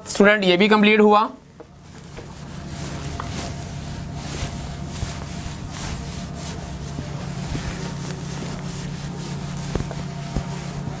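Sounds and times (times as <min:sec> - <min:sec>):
duster rubbing on whiteboard: 0:01.8 - 0:11.0.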